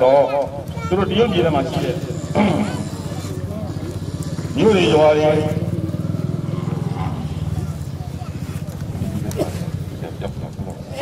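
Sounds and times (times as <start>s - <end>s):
man speaking over public address: 0.0s - 3.8s, 4.5s - 5.8s
low pulsing engine drone: 0.4s - 11.0s.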